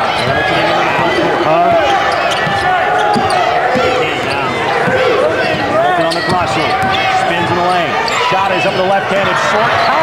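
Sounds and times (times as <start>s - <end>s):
voices in an arena: 0.0s - 10.0s.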